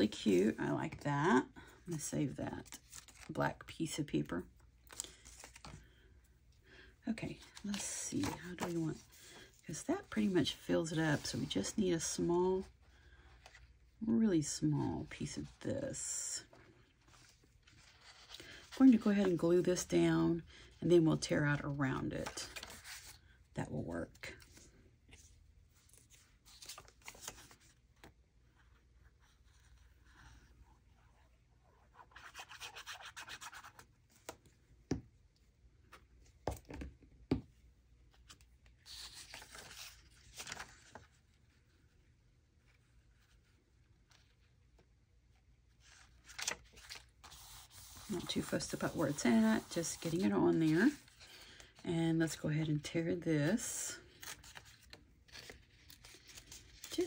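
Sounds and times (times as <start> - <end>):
paper rubbing and rustling: 45.8 - 51.4.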